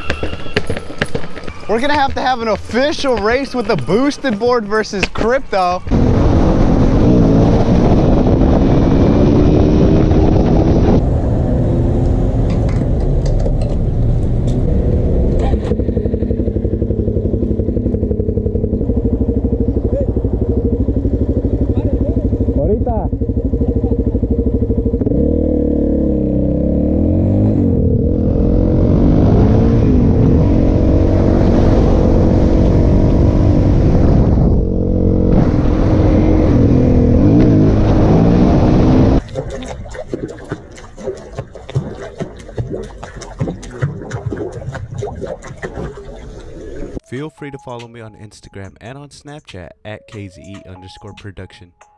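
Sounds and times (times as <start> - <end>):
motorcycle engine revving: 2.3 - 39.2.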